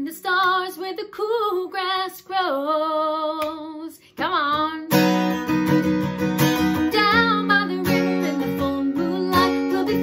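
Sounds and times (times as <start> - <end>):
woman singing unaccompanied: 0.0 - 5.0, 6.8 - 10.0.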